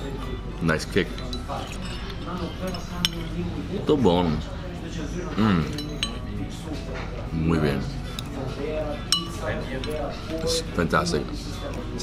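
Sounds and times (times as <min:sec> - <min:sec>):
murmur of restaurant chatter: 0:00.0 - 0:12.0
metal spoon clinking bowl: 0:01.0 - 0:03.4, 0:05.7 - 0:06.3, 0:09.1 - 0:10.4.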